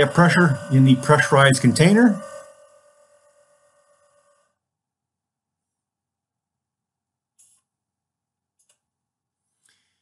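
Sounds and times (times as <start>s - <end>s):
faint steady hum: 0.0s - 4.7s.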